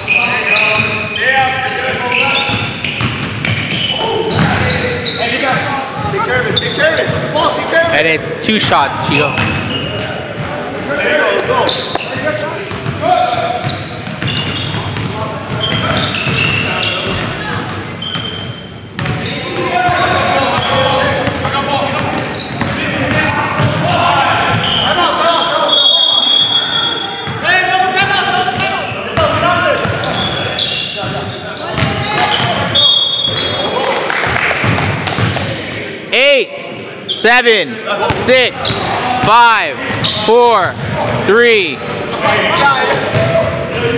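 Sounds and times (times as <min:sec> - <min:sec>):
sneaker squeaks: 0:00.0 - 0:07.3, 0:08.7 - 0:10.6, 0:11.5 - 0:33.9, 0:35.0 - 0:39.0, 0:39.8 - 0:40.3, 0:41.7 - 0:43.9
players calling out: 0:00.0 - 0:43.9.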